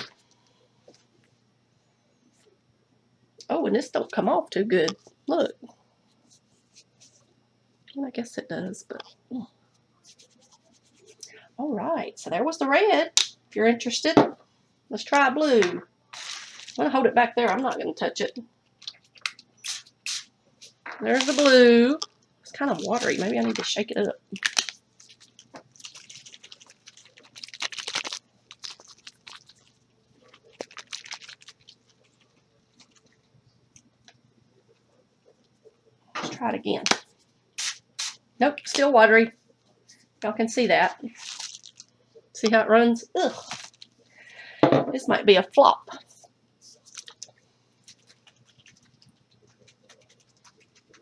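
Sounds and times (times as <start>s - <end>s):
paint bottle shaken rattling: 48.0s - 51.0s.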